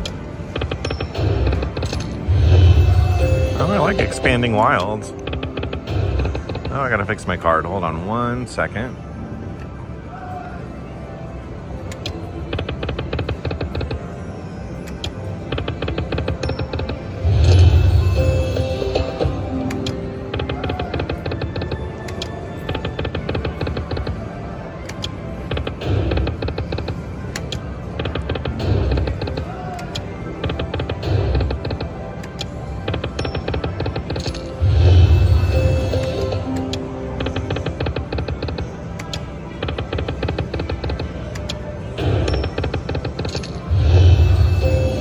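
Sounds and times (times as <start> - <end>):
slot machine game music: 0.0 - 10.0, 11.2 - 45.0.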